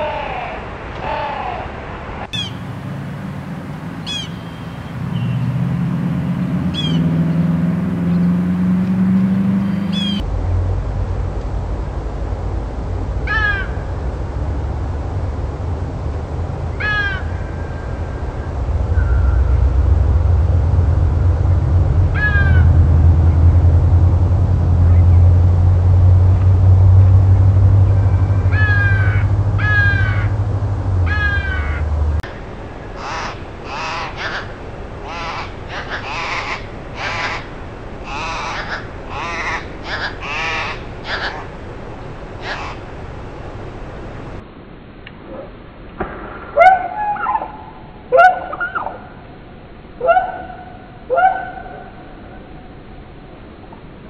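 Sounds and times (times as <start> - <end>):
harsh bird calls: 0.0 - 1.7, 2.3 - 2.8, 4.0 - 5.7, 6.5 - 10.2, 22.1 - 23.4, 27.9 - 32.0, 32.9 - 41.6, 42.4 - 42.9
wind rumble on microphone: 2.0 - 44.4
short bird calls: 6.7 - 7.0, 9.7 - 10.2.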